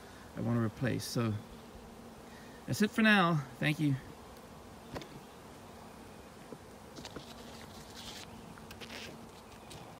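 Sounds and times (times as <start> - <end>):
bees buzzing: 0.0 - 9.9.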